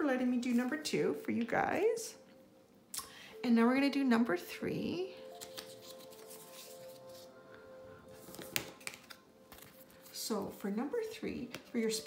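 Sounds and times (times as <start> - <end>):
soft background music: 0.0 - 12.0
cards clicking on wooden table: 5.4 - 6.4, 8.2 - 9.8.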